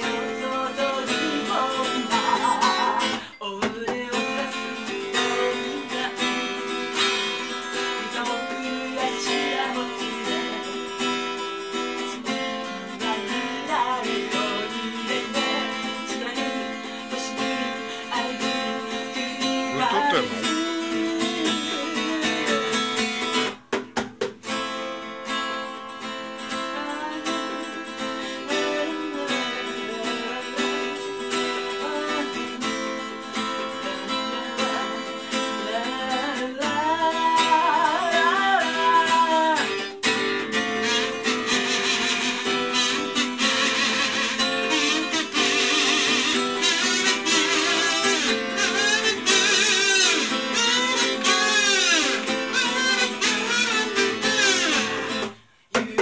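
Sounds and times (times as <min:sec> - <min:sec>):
harmonica melody: 0:00.0 - 0:03.4, 0:04.1 - 0:23.6, 0:39.6 - 0:55.4
acoustic guitar strumming: 0:00.0 - 0:56.0.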